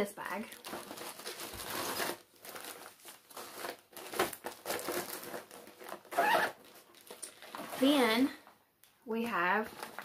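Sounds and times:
bag packaging crinkling: 0:00.2 - 0:08.2, 0:09.7 - 0:10.0.

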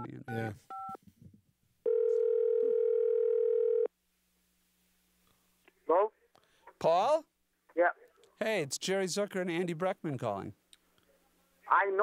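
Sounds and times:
telephone ringback tone: 0:01.8 - 0:03.9.

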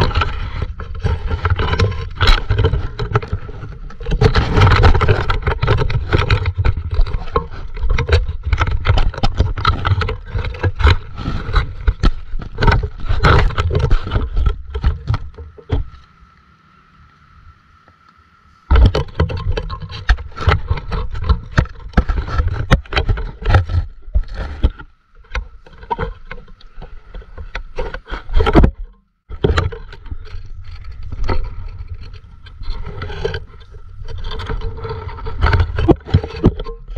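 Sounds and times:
knocks and scrapes in water: 0:00.0 - 0:16.0, 0:18.7 - 0:36.9.

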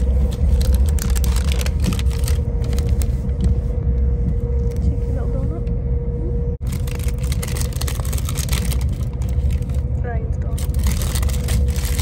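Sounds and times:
paper bag crackling: 0:00.0 - 0:03.1, 0:06.6 - 0:09.9, 0:10.5 - 0:12.0
train carriage rumble: 0:00.0 - 0:12.0.

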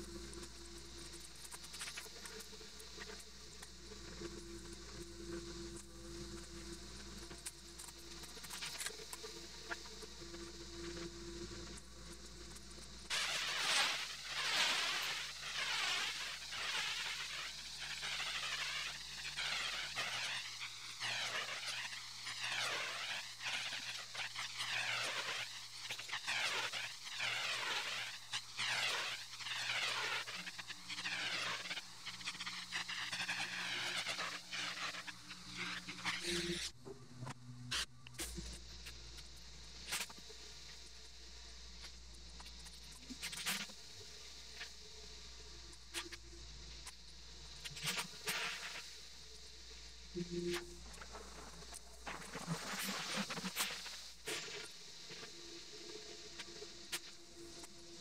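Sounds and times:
pressure washer spraying concrete: 0:13.1 - 0:36.7, 0:47.8 - 0:49.0, 0:51.7 - 0:55.3.

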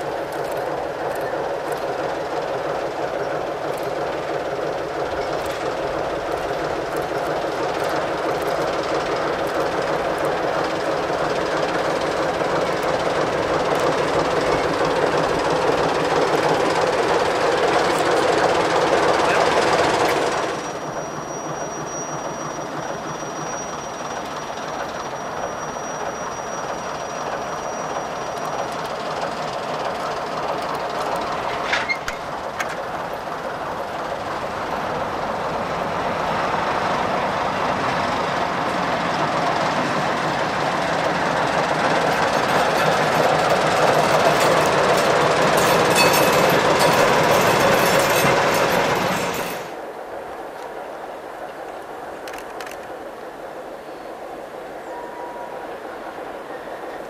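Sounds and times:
diesel locomotive engine: 0:00.0 - 0:57.0.

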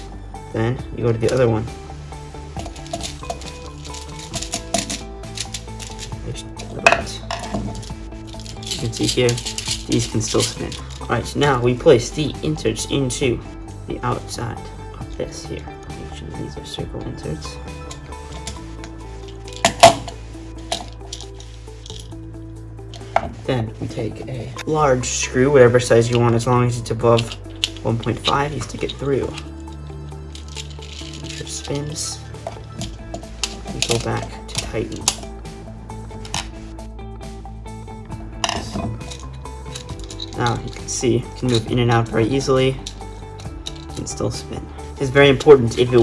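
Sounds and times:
background music with sustained notes: 0:00.0 - 0:46.0.

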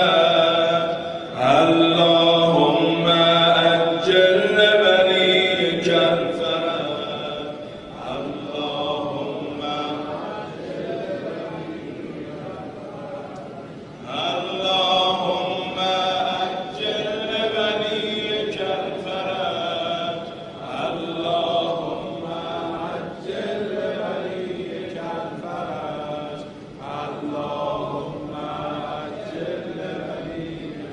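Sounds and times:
voices chanting: 0:00.0 - 0:30.9.

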